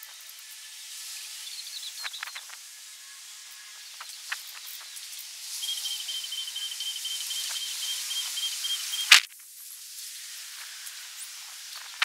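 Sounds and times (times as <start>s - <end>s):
steady high hiss: 0.0s - 12.0s
rapid trill of high pips: 5.6s - 9.3s
short sharp chirps: 5.6s - 9.3s.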